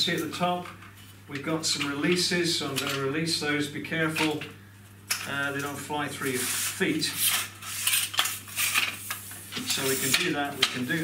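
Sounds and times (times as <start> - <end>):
metal tripod legs scraping: 6.2 - 11.0.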